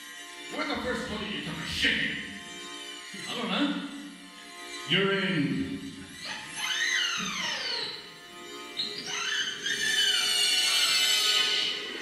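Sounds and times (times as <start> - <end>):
synthesizer tones gliding in pitch: 0.5 - 12.0.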